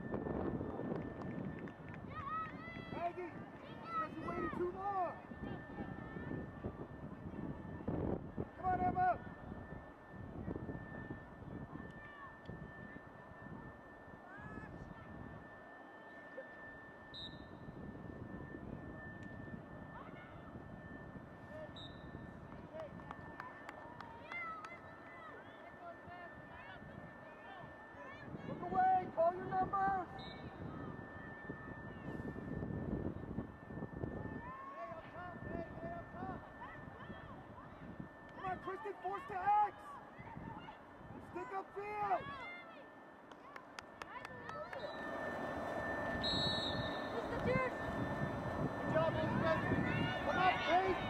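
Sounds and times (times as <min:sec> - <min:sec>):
faint high-pitched whine: 0:00.0 - 0:51.0
outdoor field ambience: 0:00.0 - 0:51.0.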